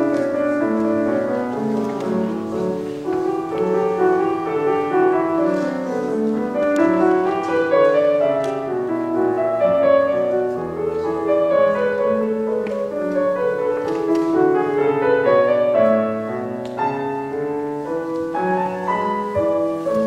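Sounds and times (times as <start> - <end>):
classical piano piece: 0.0 - 20.0.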